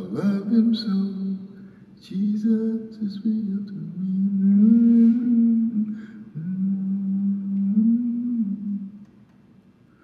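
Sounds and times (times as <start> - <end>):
man humming a low note: 4.0 - 9.0.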